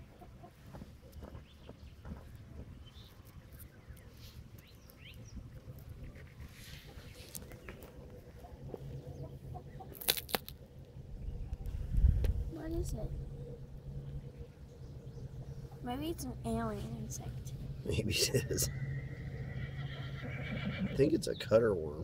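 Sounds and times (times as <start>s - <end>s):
low steady rumble: 0.0s - 22.0s.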